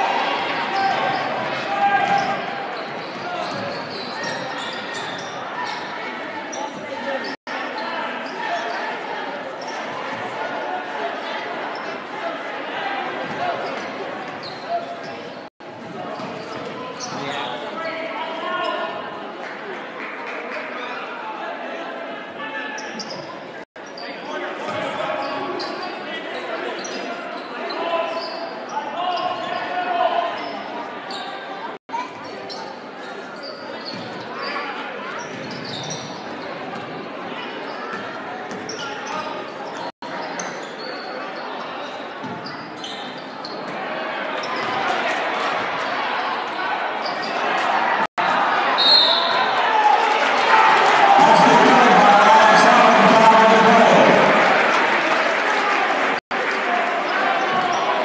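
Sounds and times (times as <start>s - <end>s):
crowd chatter and calls: 0.0s - 58.0s.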